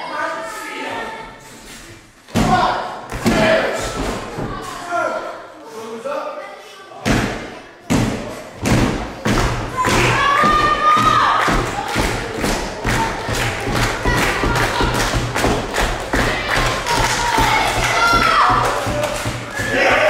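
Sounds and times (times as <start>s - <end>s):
rhythmic thumping: 7.2s - 20.0s.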